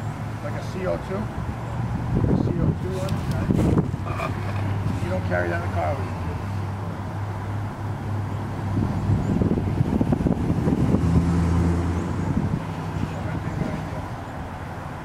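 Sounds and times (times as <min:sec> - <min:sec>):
low steady engine hum: 0:00.0 - 0:15.0
vehicle passing by: 0:00.0 - 0:15.0.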